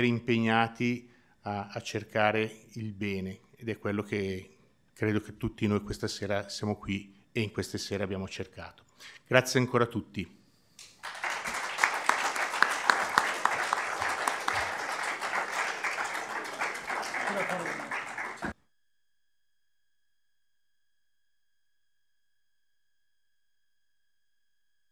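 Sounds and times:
audience applauding: 0:11.0 - 0:18.5
voices: 0:12.9 - 0:18.5.

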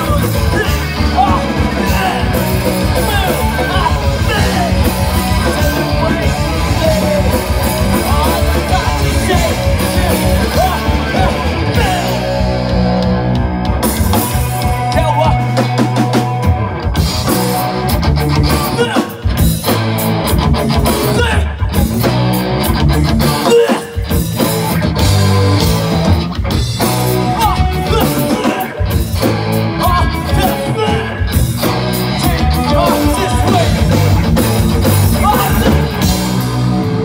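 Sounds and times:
person singing: 0:00.0 - 0:12.7, 0:27.2 - 0:29.0, 0:29.8 - 0:31.4, 0:32.0 - 0:34.2
drum kit: 0:00.0 - 0:37.0
electric guitars: 0:00.0 - 0:37.0.

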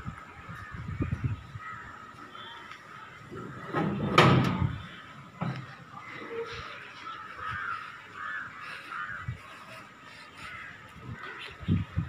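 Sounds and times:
crow cawing: 0:01.6 - 0:03.6, 0:06.0 - 0:11.6.

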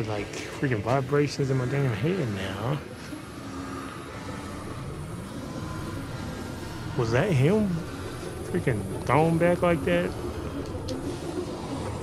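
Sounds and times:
low droning rumble: 0:00.0 - 0:12.0.

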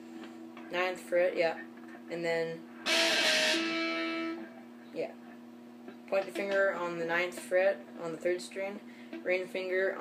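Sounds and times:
electric guitar chord ringing: 0:02.8 - 0:04.6.

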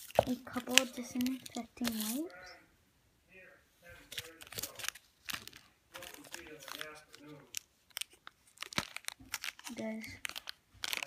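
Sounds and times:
plastic packaging crinkling: 0:00.0 - 0:02.4, 0:04.1 - 0:11.0
background speech: 0:00.3 - 0:04.8.

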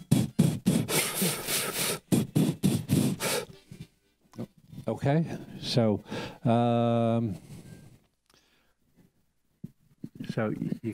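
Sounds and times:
harmonica rhythmic pulses: 0:00.0 - 0:04.0.

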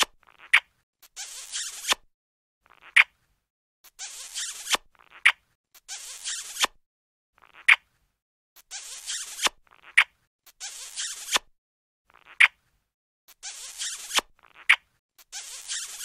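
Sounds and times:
cartoon kissing sound effects: 0:00.0 - 0:02.0, 0:02.7 - 0:03.2, 0:03.9 - 0:06.8, 0:07.4 - 0:07.9, 0:08.6 - 0:11.5, 0:12.1 - 0:12.6, 0:13.3 - 0:16.0.

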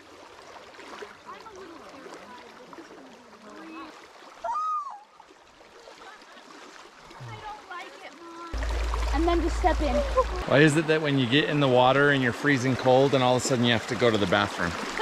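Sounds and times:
creek flowing over rocks: 0:00.0 - 0:15.0.

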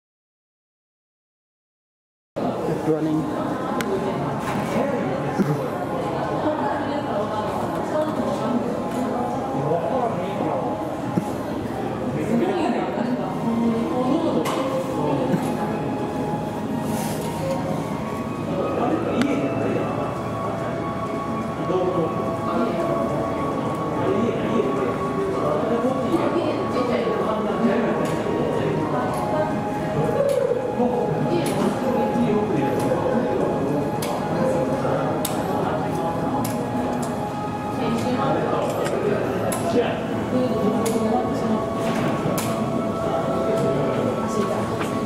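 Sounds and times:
indistinct talking people: 0:02.4 - 0:45.0
murmur of voices: 0:02.4 - 0:45.0
steady hum: 0:02.4 - 0:45.0
music playing: 0:13.5 - 0:45.0.

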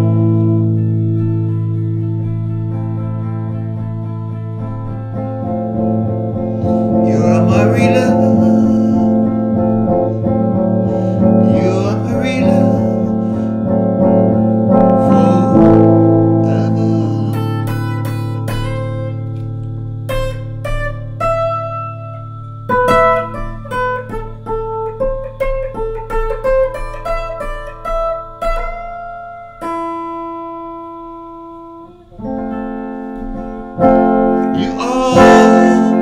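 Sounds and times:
electric guitar playing: 0:00.0 - 0:36.0.

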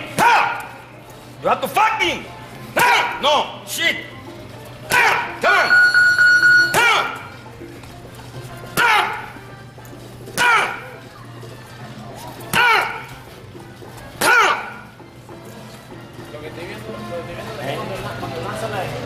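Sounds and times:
person shouting: 0:08.8 - 0:09.2, 0:10.4 - 0:10.8, 0:14.2 - 0:14.8.

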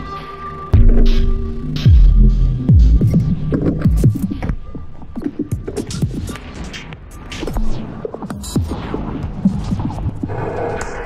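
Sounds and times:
experimental electronic music: 0:00.0 - 0:11.0.

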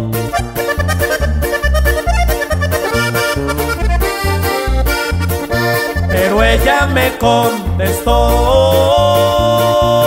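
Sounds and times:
button accordion melody: 0:00.0 - 0:10.0
steady bass line: 0:00.0 - 0:10.0
person singing: 0:06.0 - 0:10.0.

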